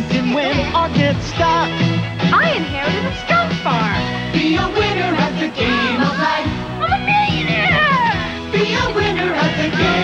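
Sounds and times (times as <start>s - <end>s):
upbeat backing music: 0.0s - 10.0s.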